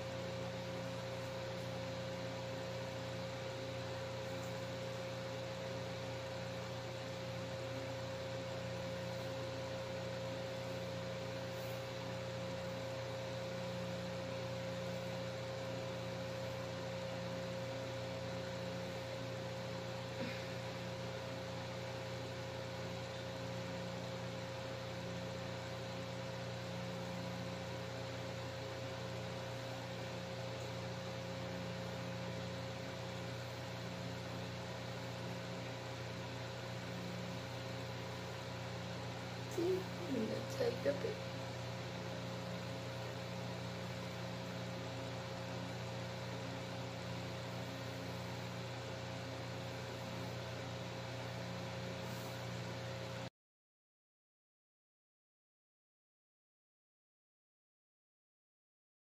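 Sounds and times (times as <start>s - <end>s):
steady hum with low drone: 0.0s - 53.2s.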